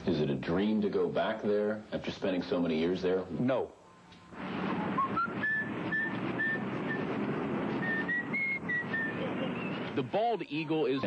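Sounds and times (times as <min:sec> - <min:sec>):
steady noisy background: 0:00.0 - 0:11.0
short high whistled notes: 0:04.6 - 0:10.0.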